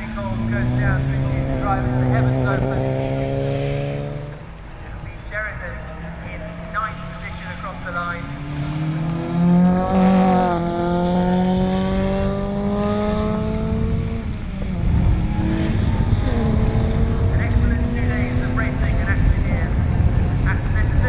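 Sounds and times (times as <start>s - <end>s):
racing car engine revving: 0.0s - 20.8s
rough engine rumble: 0.0s - 21.0s.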